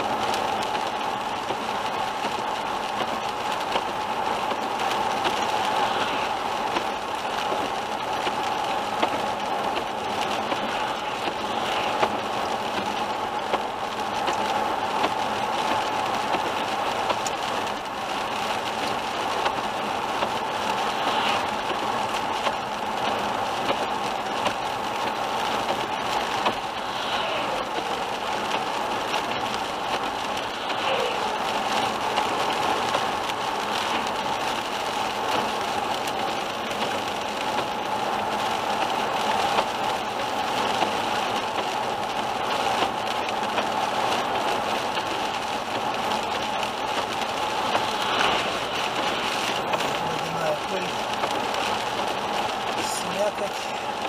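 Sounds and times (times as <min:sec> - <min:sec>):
rain on windscreen: 0:00.0 - 0:54.0
tyres hissing on wet road: 0:00.0 - 0:54.0.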